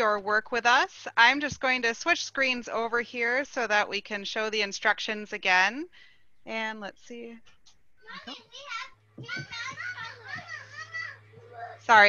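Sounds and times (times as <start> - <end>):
steady low hum: 0.0 - 12.0
children talking and calling out: 8.0 - 11.9.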